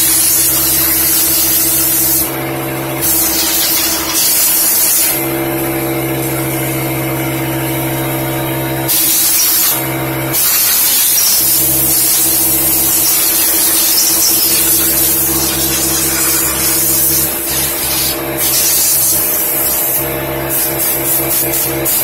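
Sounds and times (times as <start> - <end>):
compressed air blasting: 0.0 - 7.9, 8.8 - 22.0
pitched motor hum: 0.0 - 22.0.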